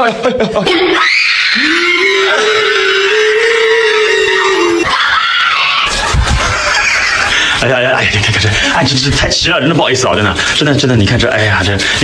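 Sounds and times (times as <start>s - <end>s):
woman screaming: 0.8s - 5.9s.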